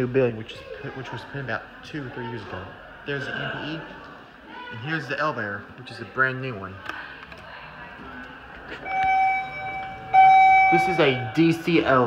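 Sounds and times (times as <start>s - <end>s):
elevator signal tone: 8.8s - 11.6s.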